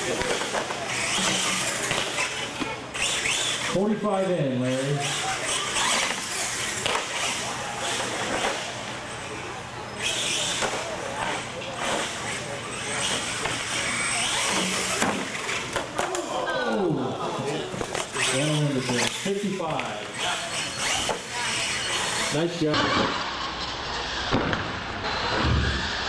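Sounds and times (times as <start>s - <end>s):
toy truck motor whine: 0.0s - 3.9s, 4.5s - 15.8s, 17.9s - 19.3s, 20.0s - 26.0s
onlookers' voices: 0.0s - 26.0s.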